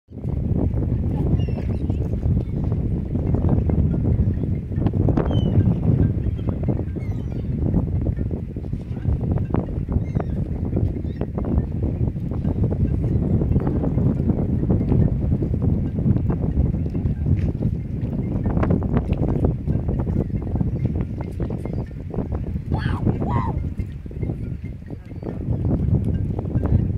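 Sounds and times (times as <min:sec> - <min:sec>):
wind buffeting microphone: 0:00.1 - 0:26.9.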